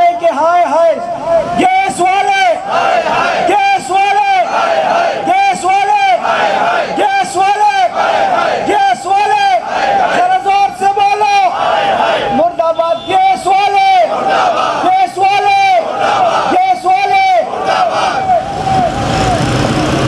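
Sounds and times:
man shouting into a microphone: 0.0s - 2.8s, 3.4s - 4.6s, 5.2s - 8.0s, 8.6s - 14.2s, 14.8s - 17.6s
crowd chanting: 2.5s - 12.5s, 13.3s - 19.4s.

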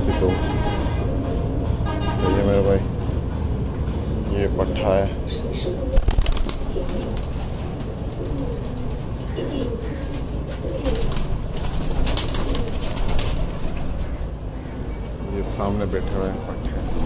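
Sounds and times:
pigeons cooing: 0.9s - 1.7s, 4.6s - 15.6s
pigeon wings clattering: 5.8s - 14.2s.

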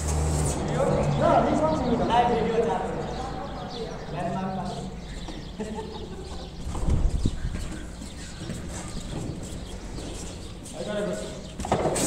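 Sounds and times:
men talking: 0.6s - 6.9s, 10.6s - 11.6s.

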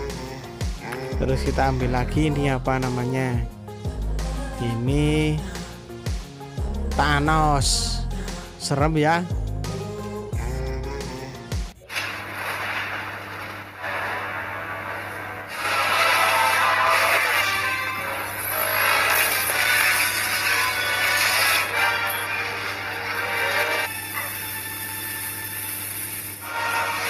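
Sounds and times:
film soundtrack music: 0.0s - 11.8s, 13.9s - 24.3s.

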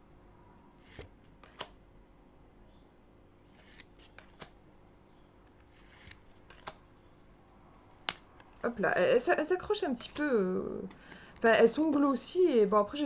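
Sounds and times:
cards sliding: 0.8s - 1.8s, 3.4s - 4.6s, 5.4s - 6.8s, 9.9s - 11.0s
sharp card snaps: 0.9s - 1.8s, 5.5s - 6.8s.

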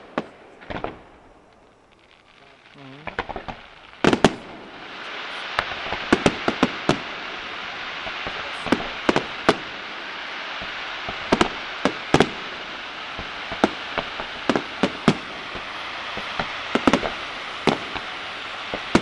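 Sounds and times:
fireworks bangs: 0.0s - 19.0s
steady hiss: 0.0s - 19.0s.

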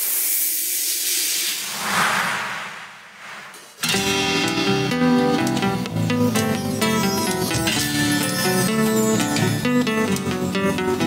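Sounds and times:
hissing whoosh effect: 1.6s - 4.1s.

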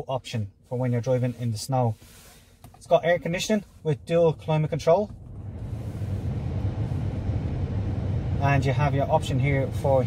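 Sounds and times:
car blower fan whooshing: 0.9s - 10.0s.

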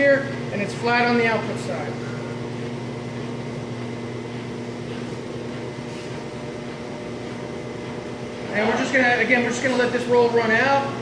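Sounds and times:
machine rollers humming: 0.0s - 11.0s.

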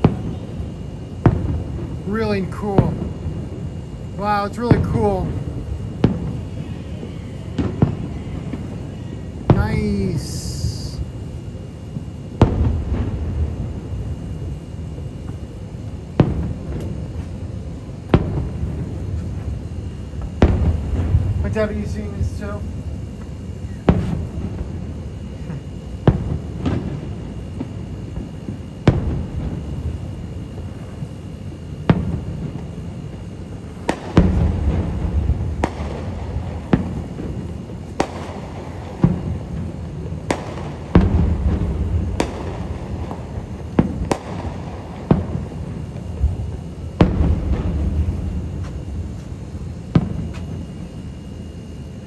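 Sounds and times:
firework shells bursting: 33.7s - 50.6s.

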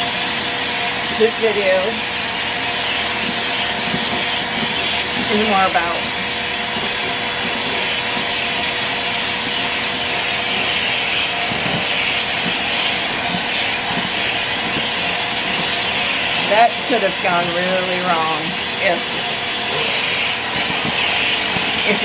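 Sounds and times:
faint motor hum: 0.0s - 22.0s
grooming dryer blowing: 0.0s - 22.0s.

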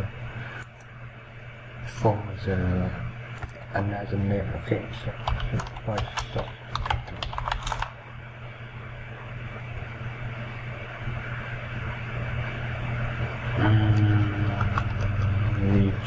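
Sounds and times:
steady low hum: 0.0s - 16.0s
computer keyboard typing: 5.2s - 8.0s
drone with held tones: 12.5s - 16.0s.

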